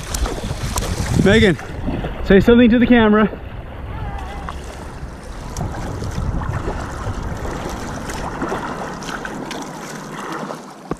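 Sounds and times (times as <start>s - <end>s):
wind rumbling on microphone: 0.0s - 10.3s
paddle stroke splashes: 0.0s - 10.9s
water rushing along a hull: 0.0s - 10.9s.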